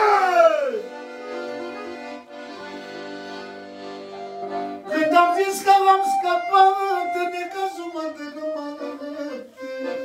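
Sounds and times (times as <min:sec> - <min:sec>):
man shouting: 0:00.0 - 0:00.8
accordion sustained chords: 0:00.0 - 0:10.0.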